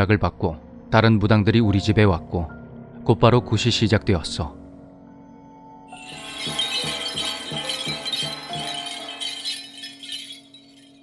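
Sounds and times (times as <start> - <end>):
jingling bells and cymbals: 6.0 - 11.0.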